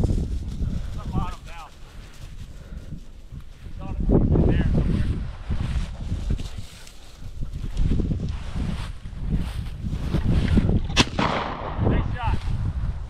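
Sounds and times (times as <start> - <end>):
footsteps through dry grass: 0.0 - 10.9
wind rumbling on microphone: 0.0 - 13.0
sharp crack: 11.0 - 12.3.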